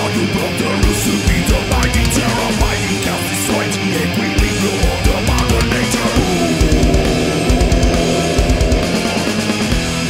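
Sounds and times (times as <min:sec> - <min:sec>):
metal music with distorted guitars: 0:00.0 - 0:10.0.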